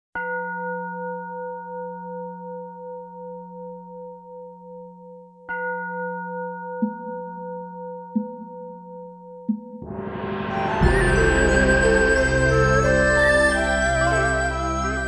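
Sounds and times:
bell-like metal instrument ringing: 0:09.8 - 0:15.0
low hum: 0:09.8 - 0:15.0.

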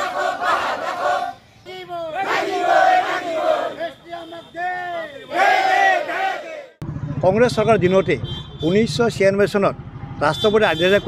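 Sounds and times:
crowd shouting slogans: 0:00.0 - 0:06.8.

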